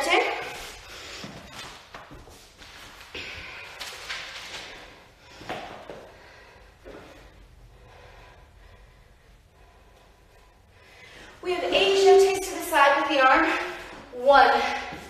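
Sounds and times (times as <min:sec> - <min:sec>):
breathing: 0:03.1 - 0:11.5.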